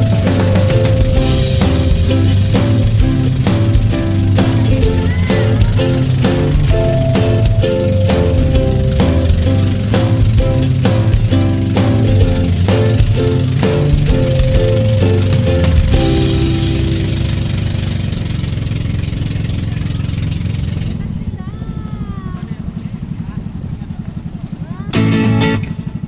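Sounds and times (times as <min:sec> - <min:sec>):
background music: 0:00.0 - 0:18.3, 0:25.0 - 0:26.0
strummed guitar: 0:00.0 - 0:19.6, 0:24.9 - 0:26.0
small boat engine pulsing: 0:00.0 - 0:26.0
wind: 0:00.0 - 0:26.0.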